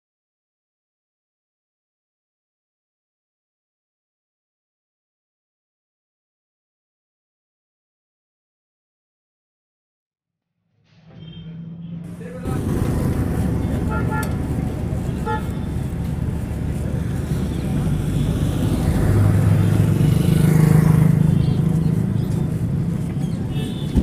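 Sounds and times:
road traffic: 10.7s - 24.0s
vehicle engine: 10.9s - 24.0s
voices: 12.0s - 24.0s
car horn toots: 13.8s - 14.4s.

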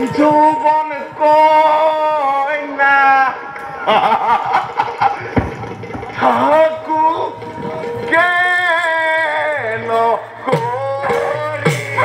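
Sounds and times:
man chanting through loudspeakers: 0.0s - 3.6s, 6.2s - 12.0s
deep thump: 5.2s - 6.4s.

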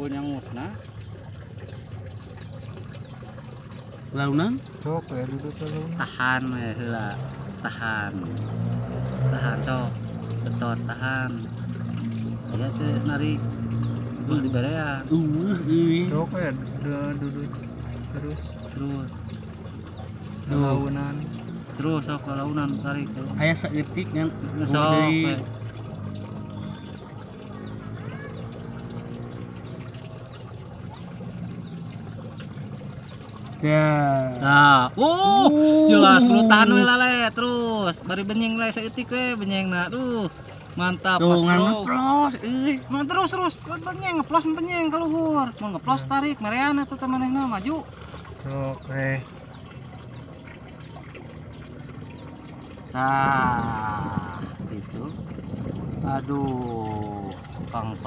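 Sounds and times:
distant voices: 0.0s - 58.0s
faint small drips: 0.0s - 58.0s
faint trickling water: 0.0s - 58.0s.

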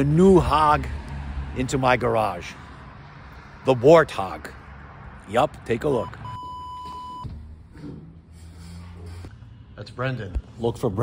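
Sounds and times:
electronic beep tone: 6.0s - 7.3s.

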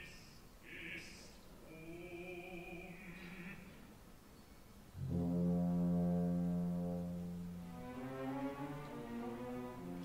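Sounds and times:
orchestra low brass held note: 5.0s - 10.0s.

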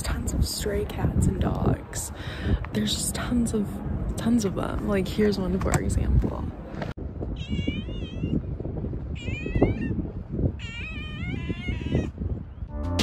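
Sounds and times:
cat meowing: 7.4s - 8.4s, 9.2s - 10.0s, 10.6s - 12.2s.

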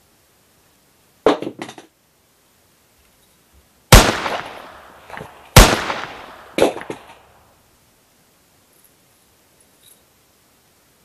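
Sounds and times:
revolver gunshots: 3.9s - 7.4s.

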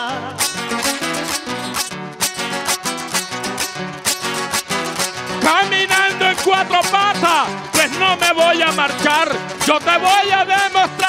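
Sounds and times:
strummed guitar-like chords: 0.0s - 11.0s.

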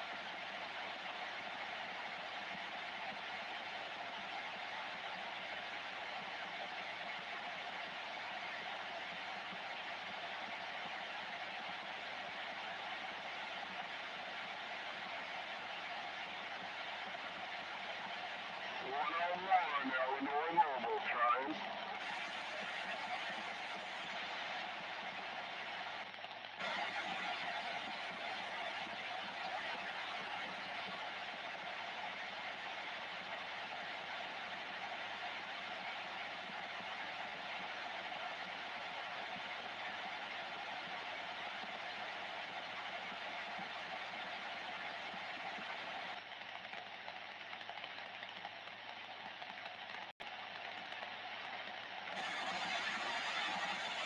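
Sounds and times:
radio static hiss: 18.6s - 25.3s, 52.1s - 54.0s.

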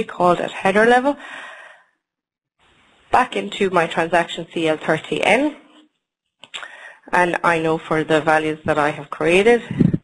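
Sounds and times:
person speaking: 0.0s - 1.2s, 3.1s - 5.8s, 6.5s - 10.0s.

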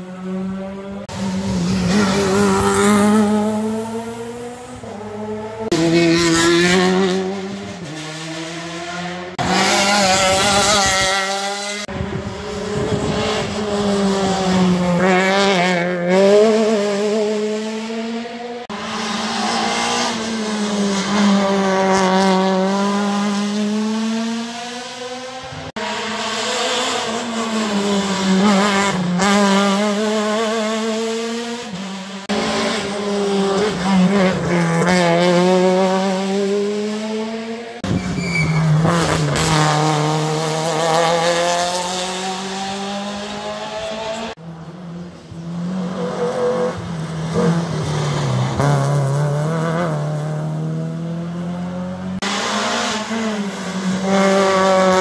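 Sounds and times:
rally car engines accelerating: 0.0s - 55.0s.

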